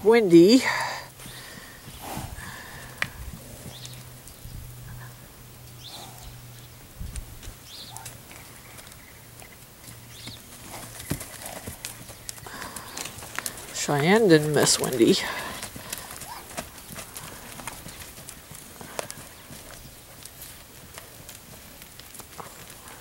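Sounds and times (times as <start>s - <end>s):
steady low hum: 0.6s - 22.1s
hoof steps on packed dirt: 0.6s - 23.0s.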